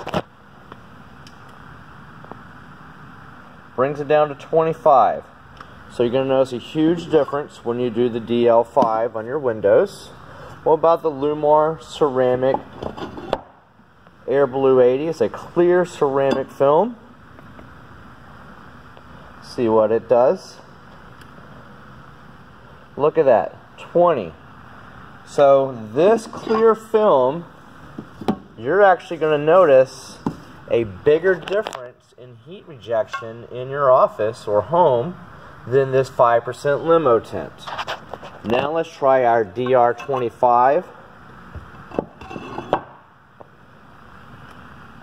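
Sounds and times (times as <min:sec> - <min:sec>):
low hiss: 0:00.2 - 0:42.0.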